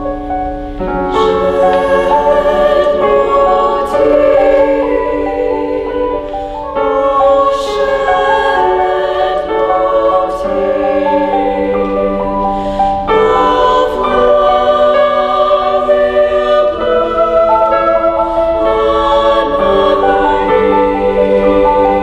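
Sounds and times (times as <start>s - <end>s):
women's choir singing: 0.8s - 22.0s.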